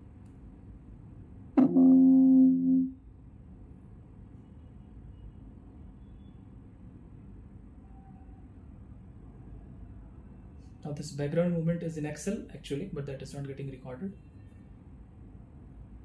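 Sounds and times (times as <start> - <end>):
loud low tone: 1.6 - 3.0.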